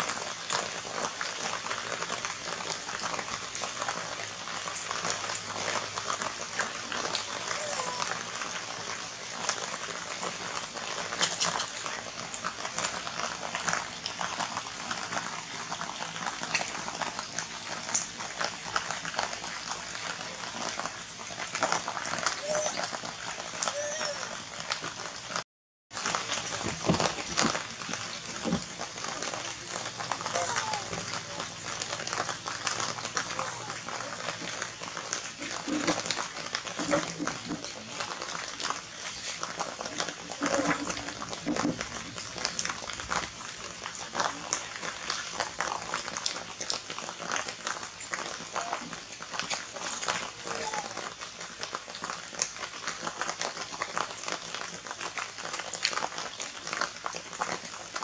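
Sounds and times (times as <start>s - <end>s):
outdoor hubbub: 0.0s - 58.0s
small clicks and rustles: 4.6s - 25.1s, 26.0s - 58.0s
people talking: 7.4s - 8.1s, 22.1s - 22.8s, 23.6s - 24.4s, 29.2s - 31.6s, 33.2s - 34.4s, 48.6s - 49.0s, 50.3s - 51.1s.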